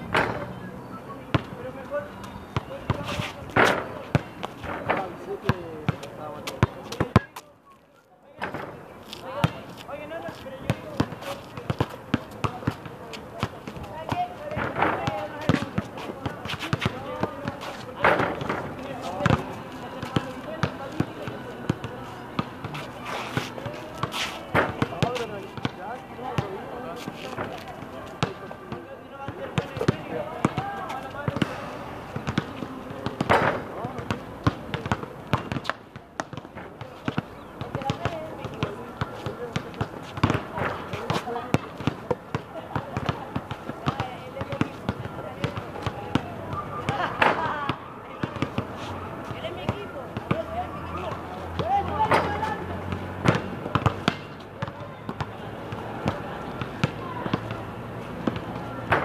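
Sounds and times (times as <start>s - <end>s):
basketball bouncing on pavement: 0.0s - 7.5s, 8.4s - 59.0s.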